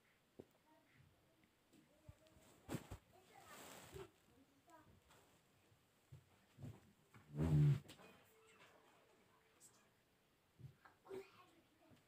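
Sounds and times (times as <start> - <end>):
faint soft noises: 0.0 - 12.0.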